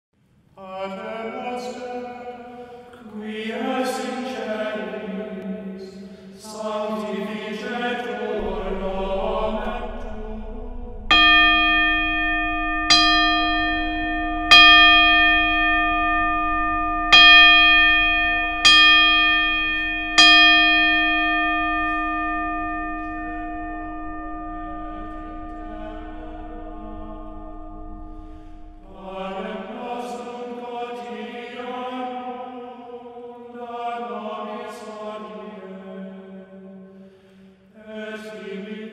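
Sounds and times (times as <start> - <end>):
choral chanting music: 0.6 - 38.9
brass gong struck with gavel: 8.4 - 29.6.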